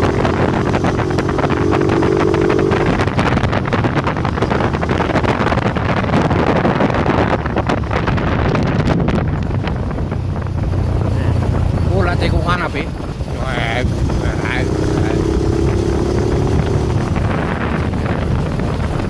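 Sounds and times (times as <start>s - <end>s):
motorcycle engine running: 0.0s - 19.0s
wind buffeting microphone: 0.0s - 19.0s.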